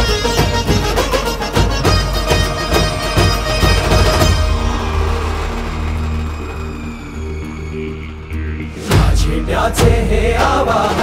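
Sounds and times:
low sustained drone: 0:04.3 - 0:09.6.

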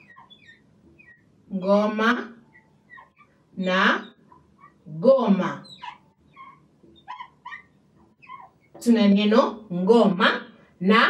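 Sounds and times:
marker squeaking on glass board: 0:00.0 - 0:01.8, 0:02.5 - 0:08.8.

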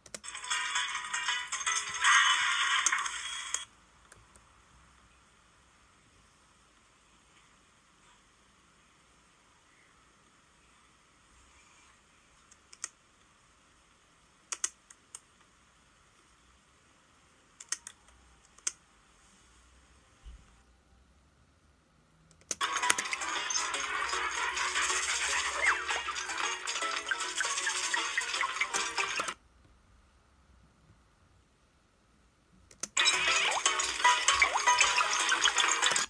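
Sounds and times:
sharp clicks: 0:14.5 - 0:15.2, 0:17.6 - 0:18.8
music from laptop speakers: 0:22.6 - 0:29.4, 0:33.0 - 0:36.0.

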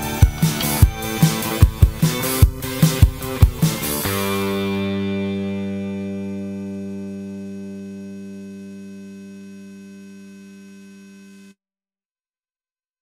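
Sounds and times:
electric bass held note: 0:00.0 - 0:11.6.

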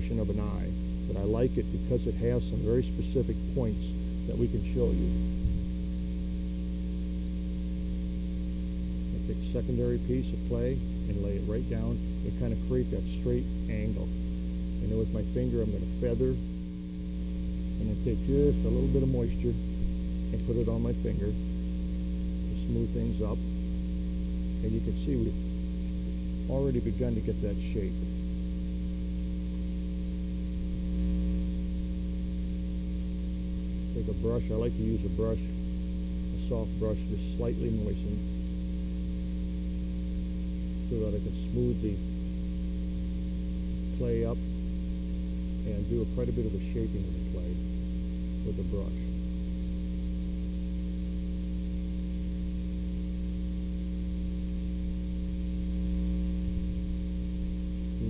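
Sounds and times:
background hiss: 0:00.0 - 0:58.0
electrical mains hum: 0:00.0 - 0:58.0.

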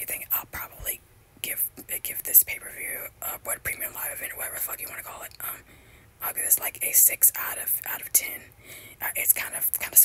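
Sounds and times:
person whispering: 0:00.0 - 0:10.0.

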